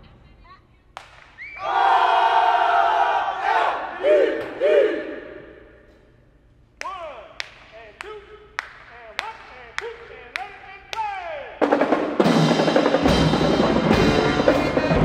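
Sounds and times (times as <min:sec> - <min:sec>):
people yelling calls: 0:01.5 - 0:05.4
marching band brass and drums: 0:11.6 - 0:15.0.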